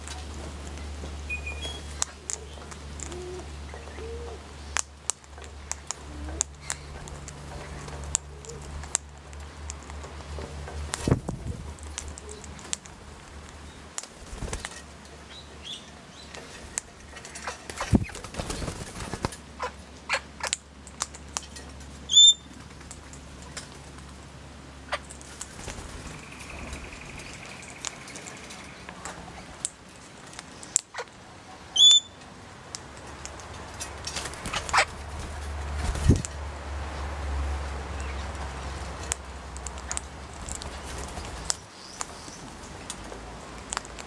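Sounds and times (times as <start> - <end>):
beak clicks and wing rustling: 0.0 - 24.3, 24.9 - 31.2, 32.2 - 44.0
parrot wings flapping: 10.8 - 13.0, 14.0 - 14.8, 16.4 - 19.6, 25.2 - 29.2, 33.7 - 36.4.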